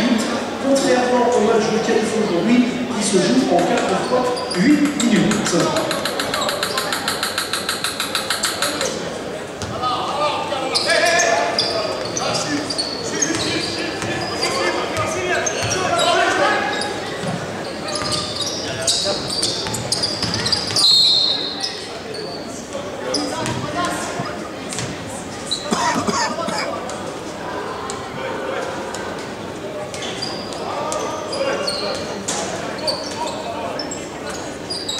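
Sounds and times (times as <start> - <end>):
voices in a hall: 0.0 - 34.9
shoes squeaking on court: 3.6 - 8.9, 10.7 - 26.1, 29.9 - 34.9
referee's whistle: 20.8 - 21.6
basketball bouncing: 23.4 - 25.0.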